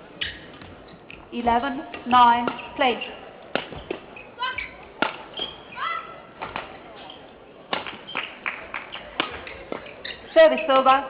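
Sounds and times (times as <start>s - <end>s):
rackets hitting shuttlecock: 1.9s - 5.7s, 6.3s - 10.7s.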